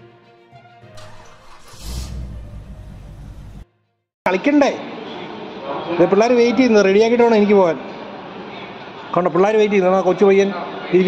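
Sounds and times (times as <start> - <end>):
music: 0.0 - 4.0
car engine starting and running: 1.0 - 3.6.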